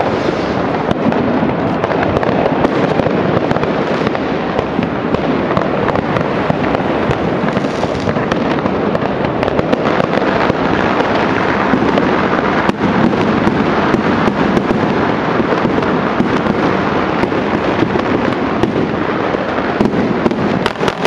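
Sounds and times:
firecrackers and fireworks crackling: 0.0 - 21.0.

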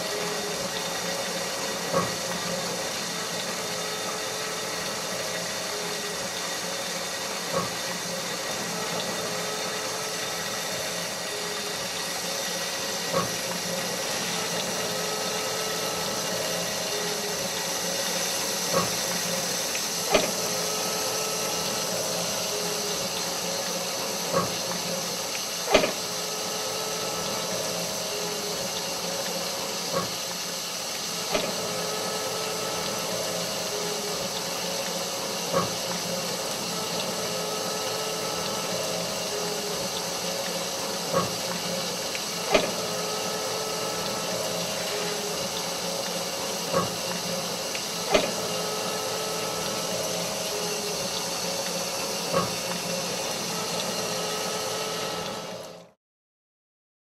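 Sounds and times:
machine hum and hiss: 0.0 - 56.0.

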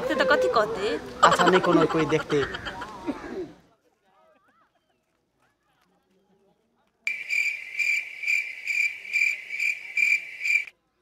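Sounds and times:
cricket chirping: 7.1 - 10.7.

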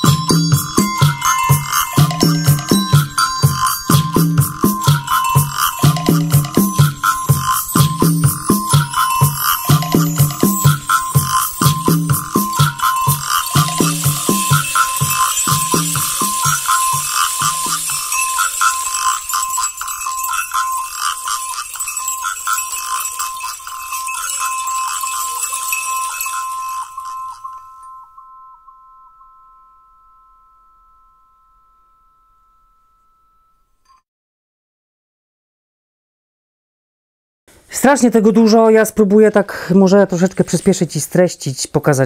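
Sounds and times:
shakers and rattles: 0.0 - 28.4, 40.1 - 41.2
percussion beat: 0.0 - 28.5
high ringing tones: 0.0 - 34.0.

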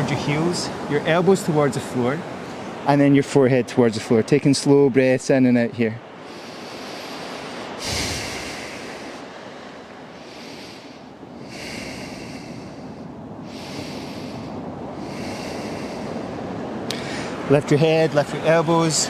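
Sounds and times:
surf: 0.0 - 19.0
person breathing through the nose: 6.2 - 9.3, 10.1 - 17.4.

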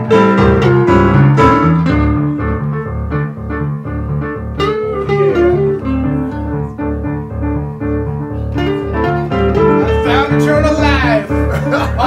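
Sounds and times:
fingerpicked electric guitar: 0.0 - 12.0
low bass notes: 0.0 - 12.0
sliding lead guitar line: 0.0 - 12.0.

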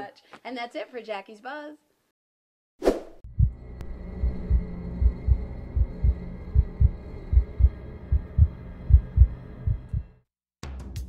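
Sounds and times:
heartbeat double thumps: 3.2 - 10.2
steady low drone: 3.3 - 10.2.

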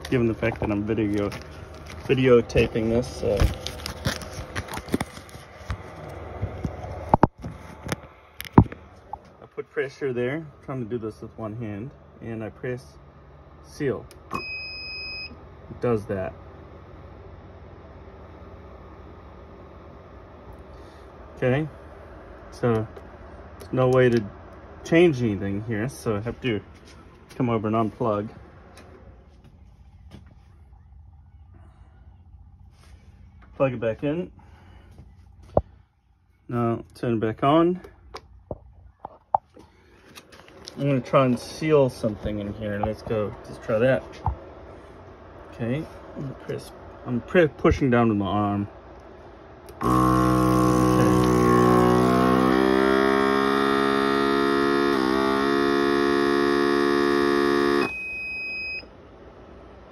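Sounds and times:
vacuum pump humming: 0.0 - 9.6, 49.6 - 58.8
faint low hum: 0.0 - 59.9.

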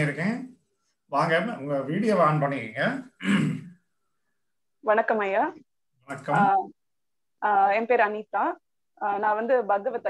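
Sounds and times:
man speaking: 0.0 - 3.7, 6.1 - 6.6
woman speaking: 4.8 - 5.6, 6.3 - 6.8, 7.4 - 10.0.

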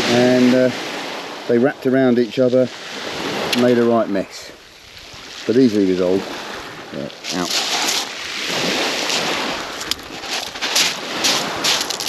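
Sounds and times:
waves washing on shingle: 0.0 - 4.2, 4.9 - 12.0
pebble clicks: 9.8 - 12.0.

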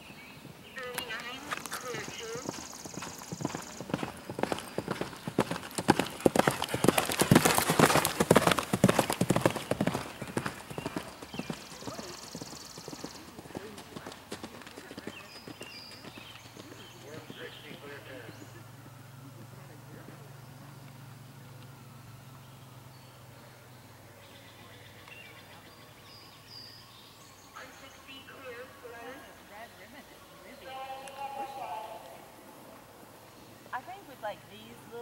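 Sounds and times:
horse galloping on grass: 0.8 - 19.4.

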